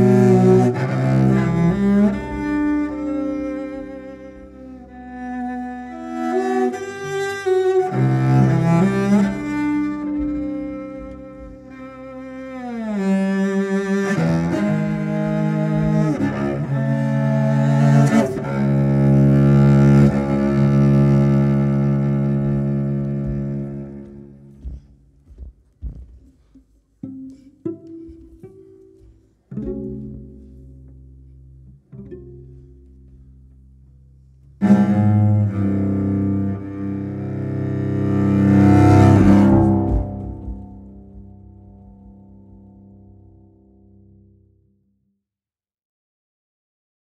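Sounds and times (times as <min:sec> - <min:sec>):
bowed cello notes: 0:00.0 - 0:25.2, 0:26.9 - 0:44.6.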